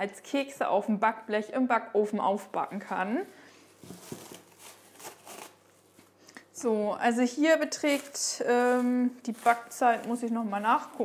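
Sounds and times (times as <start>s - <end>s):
cling film crinkling: 3.8s - 6.2s, 7.6s - 11.0s.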